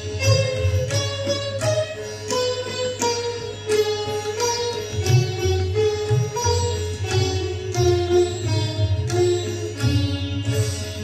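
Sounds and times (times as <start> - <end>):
sitars playing melody: 0.0 - 11.0.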